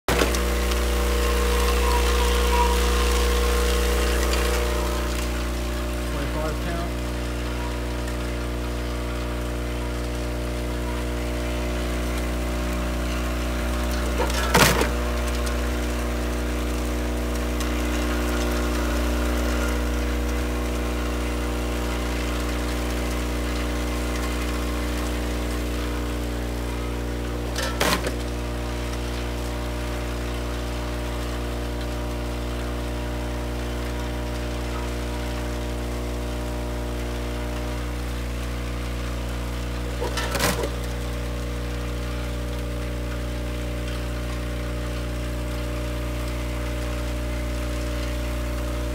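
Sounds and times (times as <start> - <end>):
vibratory feeder humming: 0.1 - 48.9.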